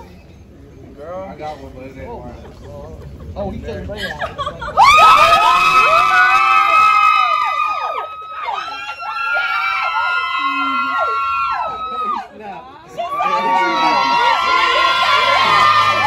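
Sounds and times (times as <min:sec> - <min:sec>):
people screaming with excitement: 0:04.6 - 0:12.3, 0:13.0 - 0:16.0.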